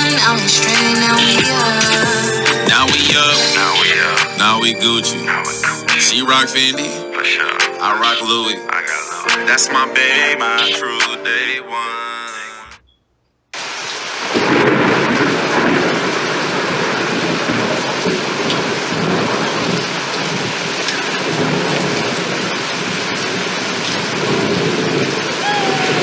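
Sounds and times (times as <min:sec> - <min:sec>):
heavy rain: 0:00.0 - 0:07.5, 0:13.6 - 0:26.0
rolling thunder: 0:14.2 - 0:26.0.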